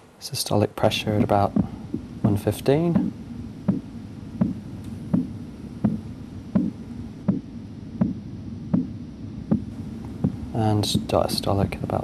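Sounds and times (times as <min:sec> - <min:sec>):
pulse knocking in artery: 0:01.5 - 0:02.4, 0:03.0 - 0:10.4.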